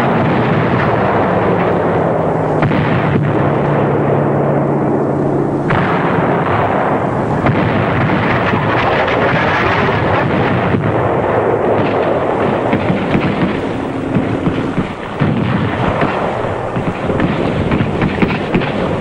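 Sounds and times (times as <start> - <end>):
heavy bombardment rumble: 0.0 - 19.0
shell bursts and shots: 0.0 - 19.0.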